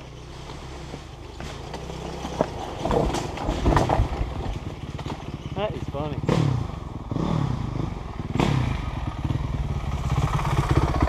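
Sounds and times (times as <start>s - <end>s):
dirt bike engine revving: 0.6s - 11.0s.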